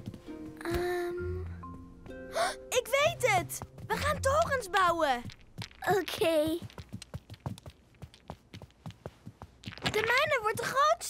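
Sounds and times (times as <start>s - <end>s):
light footsteps on carpet: 3.0s - 5.7s, 6.6s - 9.7s.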